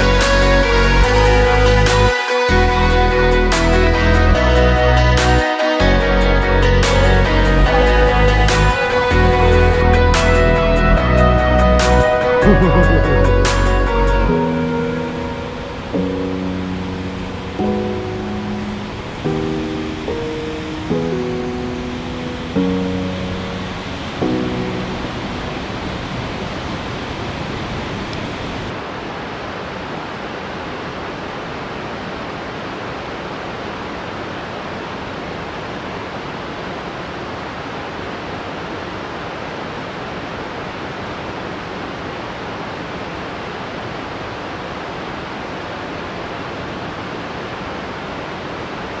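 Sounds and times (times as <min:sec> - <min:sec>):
river flowing: 0:00.0 - 0:49.0
waterfall rushing: 0:05.1 - 0:49.0.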